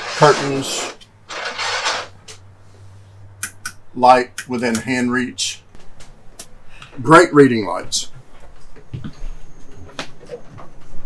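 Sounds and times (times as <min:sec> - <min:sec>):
curtain swishing along track: 0:00.0 - 0:02.2.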